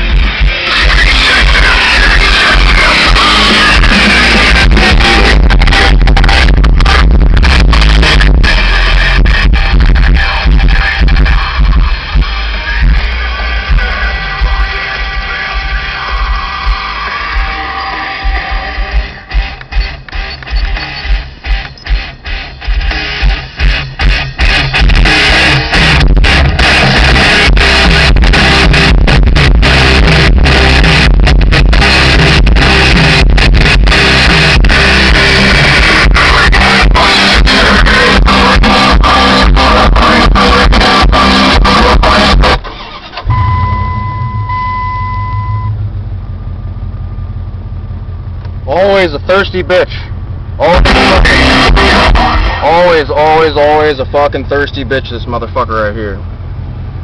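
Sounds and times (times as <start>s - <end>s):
loud rock music: 0.0s - 45.8s, 48.4s - 56.6s
truck engine starting and idling: 0.0s - 57.0s
electronic chime: 43.2s - 45.8s.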